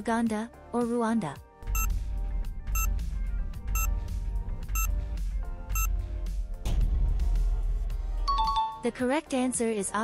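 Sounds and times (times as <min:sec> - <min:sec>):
countdown timer beeps: 0:01.7 - 0:01.9, 0:02.7 - 0:02.9, 0:03.7 - 0:03.9.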